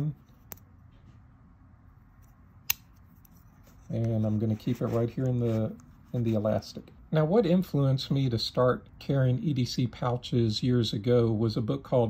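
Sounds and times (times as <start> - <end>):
faint handling noise: 2.0 - 7.0.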